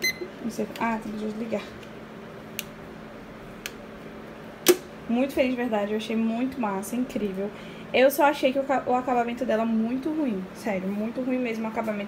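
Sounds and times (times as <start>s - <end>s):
faint steady hum: 0.0s - 12.0s
magnetic timer snapping onto metal: 4.6s - 4.9s.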